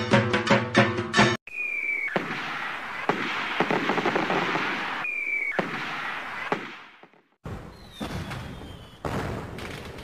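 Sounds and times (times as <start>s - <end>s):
firework whistle: 1.5s - 2.7s, 4.6s - 6.6s
fireworks bangs: 1.8s - 10.0s
fireworks crackling: 2.1s - 7.2s.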